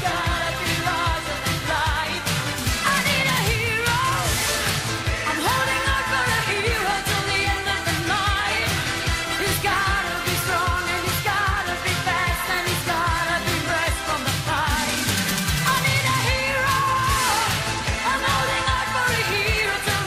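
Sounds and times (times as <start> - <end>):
song with singing voice: 0.0 - 20.0
steady drum beat: 0.0 - 20.0.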